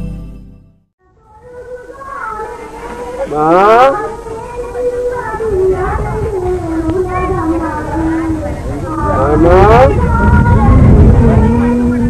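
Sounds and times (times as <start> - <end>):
person's wavering sing-song voice: 1.1 - 12.0.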